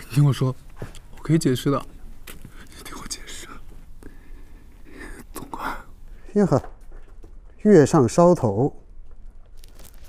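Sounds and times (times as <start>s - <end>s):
faint whispering: 2.5s - 6.3s.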